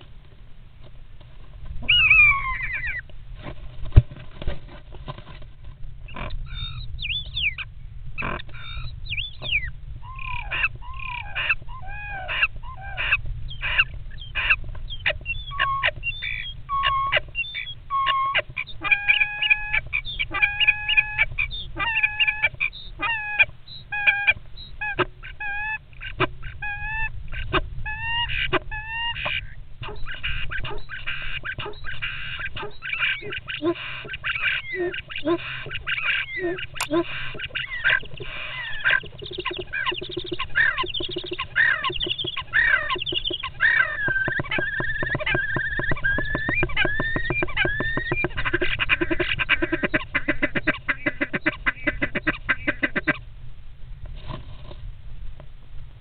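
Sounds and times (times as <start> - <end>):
starlings calling: 1.8 - 3.1, 6.1 - 53.2.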